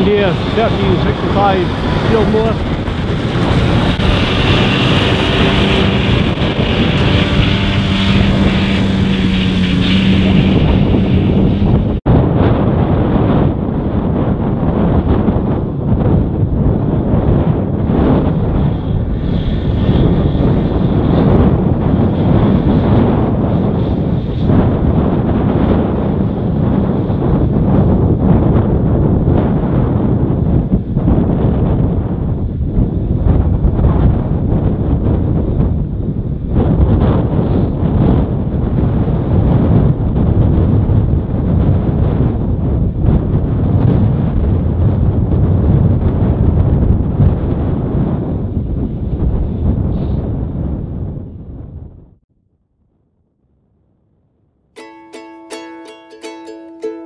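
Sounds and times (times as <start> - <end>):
tractor engine running: 0.0 - 12.0
low hum: 0.0 - 12.8
wind buffeting microphone: 0.0 - 52.2.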